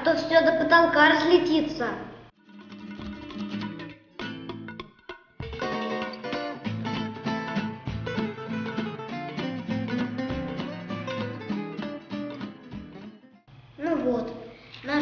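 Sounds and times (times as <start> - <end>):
plucked string music: 2.4 - 13.4.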